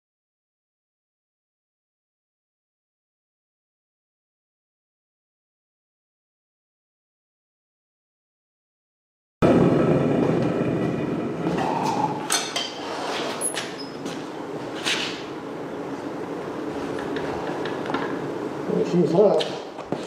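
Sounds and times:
foundry burner rushing: 9.4 - 20.0.

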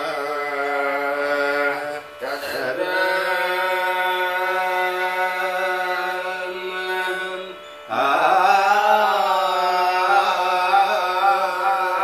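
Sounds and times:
man singing sustained notes: 0.0 - 12.0.

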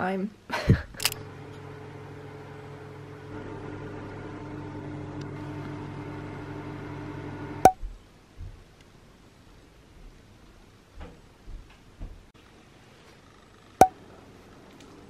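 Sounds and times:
kitchen appliance humming: 1.0 - 7.7.

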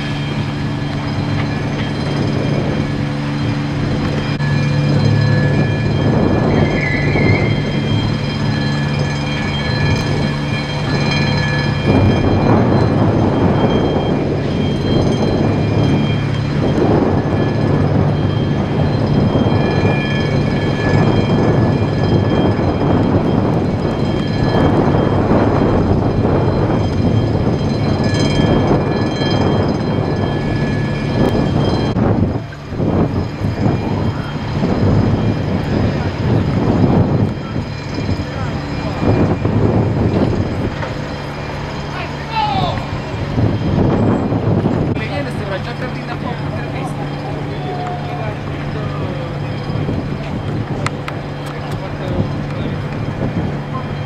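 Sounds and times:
loud engine drone: 0.0 - 54.0.

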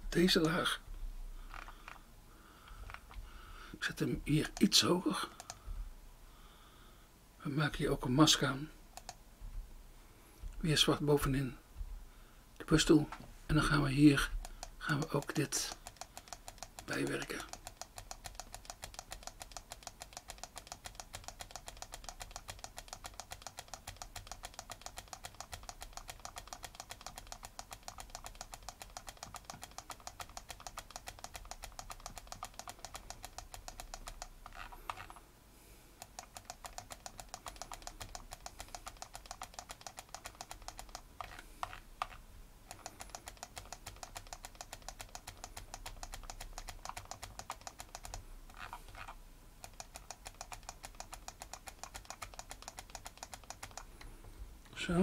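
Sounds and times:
rapid even clicking: 0.0 - 0.8, 2.6 - 5.8, 9.0 - 9.2, 14.2 - 35.2, 35.9 - 54.8.

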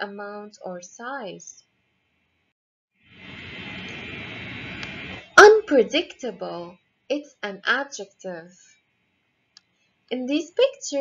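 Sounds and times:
steady background hiss: 3.2 - 6.2.

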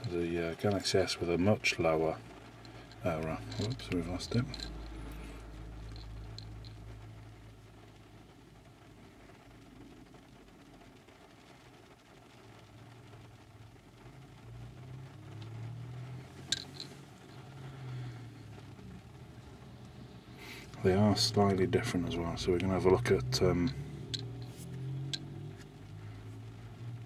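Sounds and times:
low rumble inside car cabin: 0.0 - 27.0.

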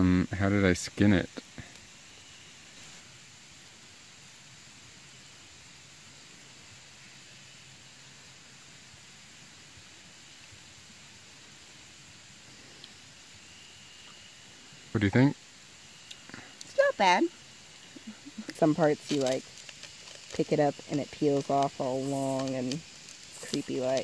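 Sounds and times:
faint background hiss: 0.0 - 24.0.

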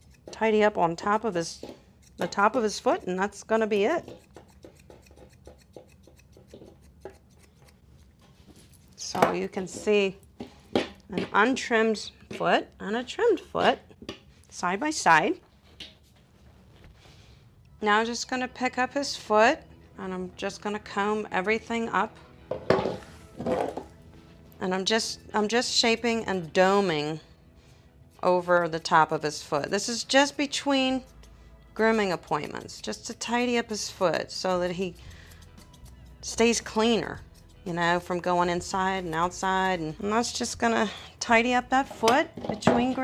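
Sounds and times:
grooming shears snipping: 0.0 - 10.2, 28.2 - 39.8
metal comb scraping through hair: 0.0 - 10.7, 20.5 - 22.1, 28.1 - 42.1.

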